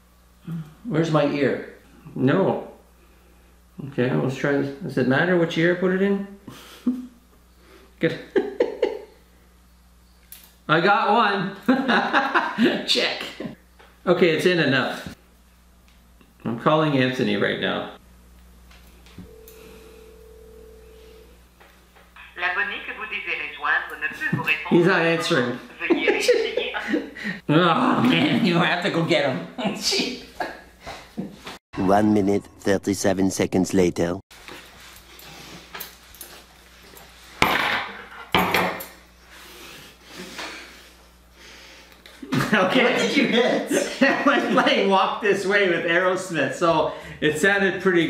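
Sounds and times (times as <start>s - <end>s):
phone ringback tone: 19.2s - 21.3s
man speaking: 31.8s - 34.2s
objects knocking and clattering: 37.4s - 38.9s.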